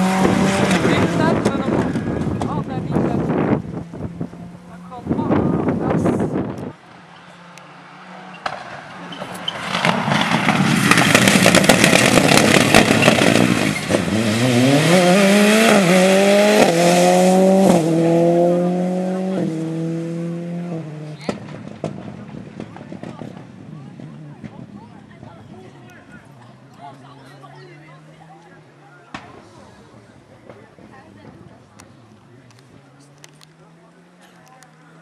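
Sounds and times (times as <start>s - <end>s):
rally car engine at full throttle: 0.0s - 35.0s
rushing road noise: 0.0s - 35.0s.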